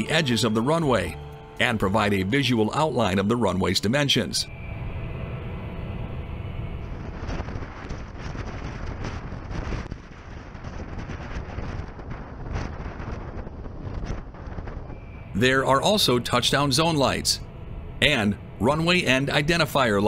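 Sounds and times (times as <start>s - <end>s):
steady low rumble: 0.0s - 20.0s
wind buffeting microphone: 4.5s - 20.0s.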